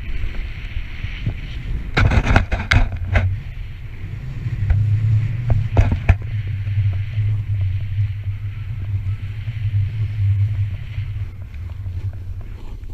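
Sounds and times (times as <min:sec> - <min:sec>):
sharp crackles: 0:00.0 - 0:12.9
wind buffeting microphone: 0:00.0 - 0:12.9.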